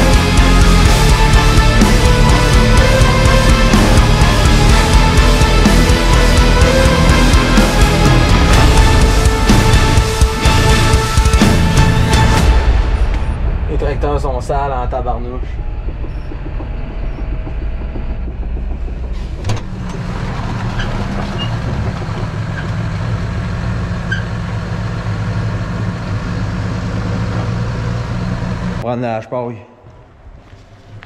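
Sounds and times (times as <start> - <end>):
tractor engine running: 0.0 - 13.6, 15.6 - 28.8.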